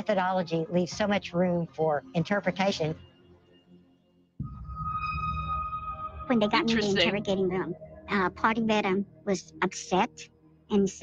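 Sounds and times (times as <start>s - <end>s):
steady high tone: 4.4s - 8.3s
low rumbling drone: 4.4s - 9.4s.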